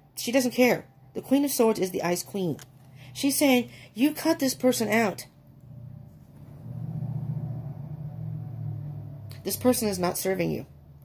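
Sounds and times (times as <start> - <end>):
low steady rumble: 0.8 - 11.0.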